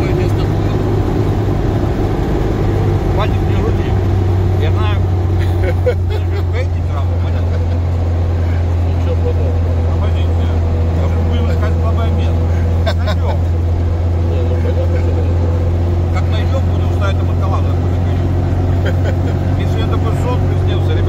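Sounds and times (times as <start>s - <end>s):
vehicle cabin engine drone: 0.0s - 21.0s.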